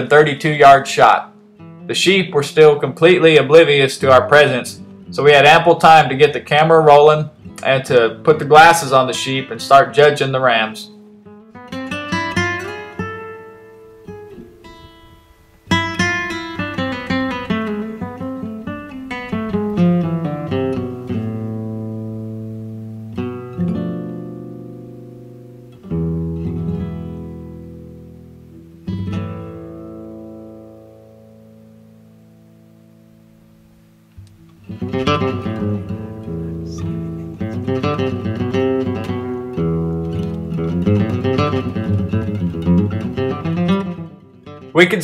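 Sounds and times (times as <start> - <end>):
acoustic guitar picking and strumming: 0.0 - 33.5, 34.1 - 45.0.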